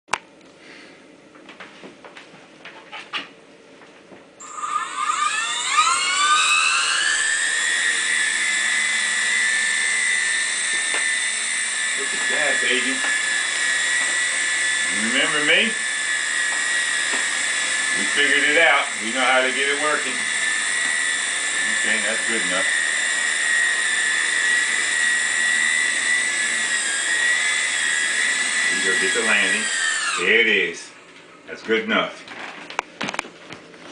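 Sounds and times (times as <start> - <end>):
toy helicopter rotor whine: 4.4 - 30.9.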